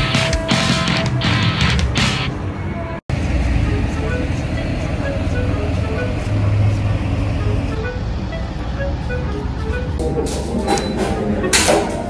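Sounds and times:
background music melody: 0.0s - 12.0s
city street traffic rumble: 0.0s - 12.0s.

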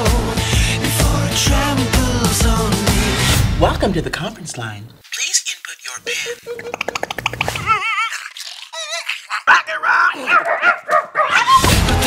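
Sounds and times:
dog yapping: 10.2s - 11.7s.

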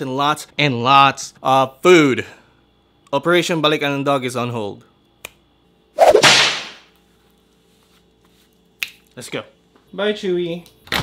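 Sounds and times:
whip-like swoosh: 6.0s - 6.8s.

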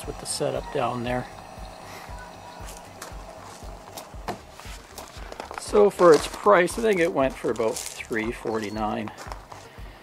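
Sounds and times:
fridge compressor pulsing hum: 0.0s - 10.0s.

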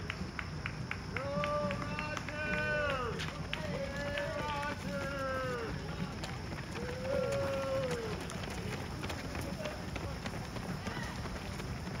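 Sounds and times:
runners' footfalls on pavement: 0.0s - 12.0s
people talking: 1.2s - 11.6s.

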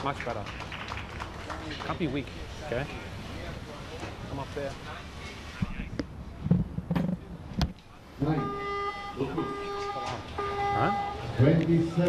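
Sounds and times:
held pitched tones: 8.2s - 11.4s.

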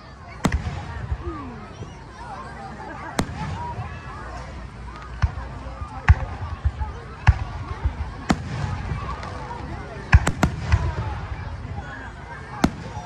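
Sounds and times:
crowd talking: 0.0s - 13.0s.

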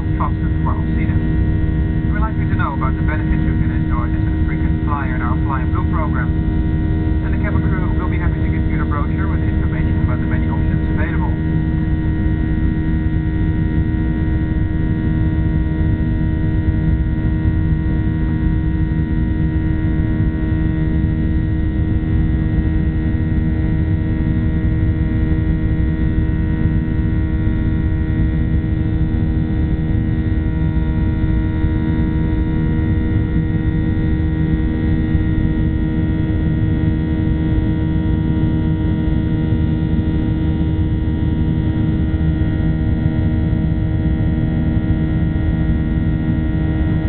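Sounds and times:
airplane cabin rumble: 0.0s - 47.0s
jet engine drone: 0.0s - 47.0s.

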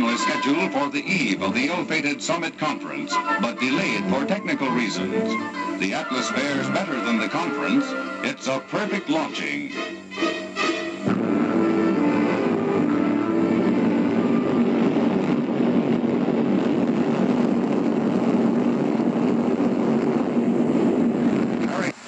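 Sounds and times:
rocket engine roar: 0.0s - 22.0s.

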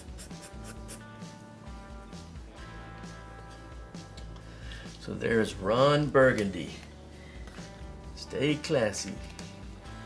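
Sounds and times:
marker scratching on paper: 0.0s - 1.1s
background music: 0.0s - 10.0s.

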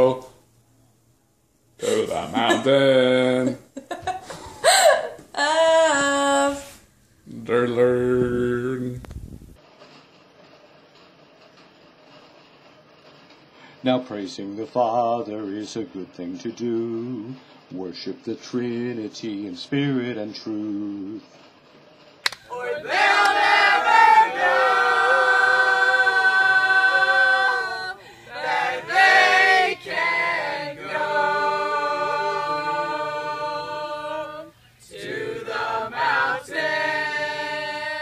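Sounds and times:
mixed group singing: 22.5s - 38.0s.

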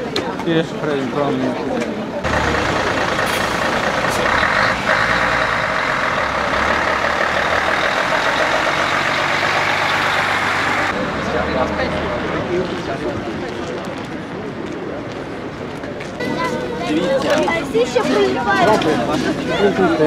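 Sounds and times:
heavy trucks driving past: 2.2s - 13.4s.

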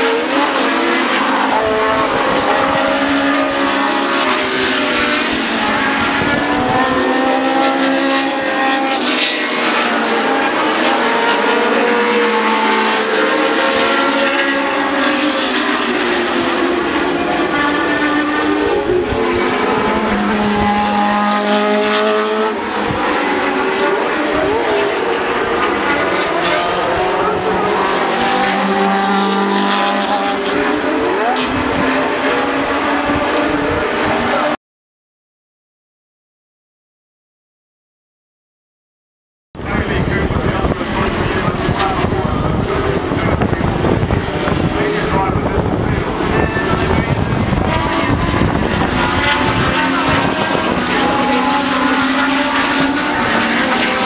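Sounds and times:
racing car engines at full throttle: 0.0s - 34.6s, 39.6s - 54.0s.

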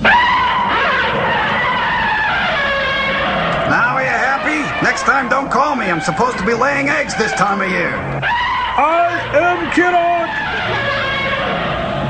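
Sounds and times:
screeching monster cry: 0.0s - 12.0s.

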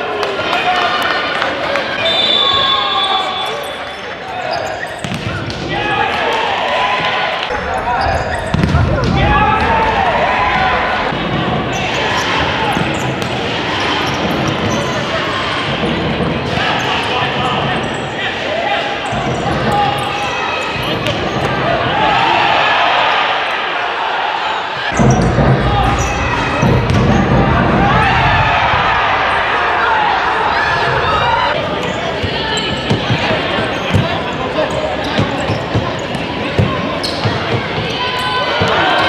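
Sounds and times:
people shouting in large hall: 0.0s - 39.0s.

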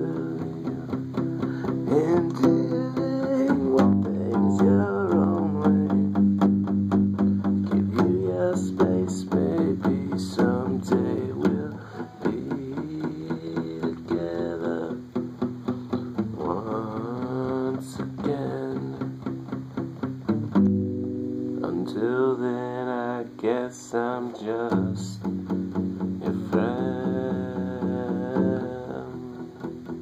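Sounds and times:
person singing: 0.0s - 6.5s, 7.2s - 19.6s, 21.5s - 30.0s
acoustic guitar strumming: 0.0s - 30.0s.

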